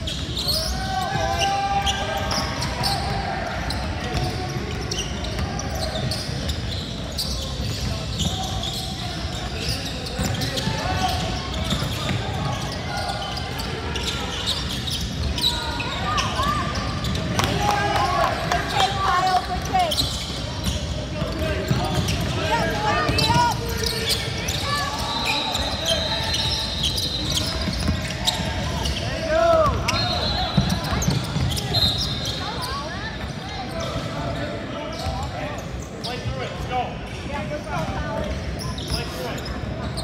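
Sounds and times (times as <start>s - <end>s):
sneakers squeaking: 0.0s - 40.0s
basketballs bouncing on wood floor: 16.4s - 23.7s, 27.3s - 31.6s.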